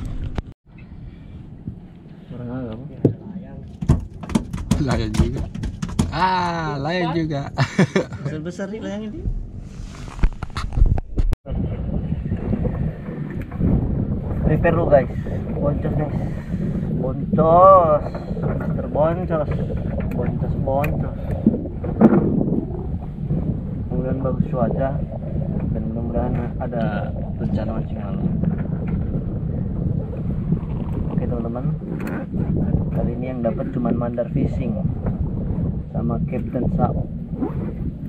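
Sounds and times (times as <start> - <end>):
wind buffeting microphone: 0.0 - 8.3, 9.0 - 38.0
sharp knocks and clicks: 3.0 - 6.2.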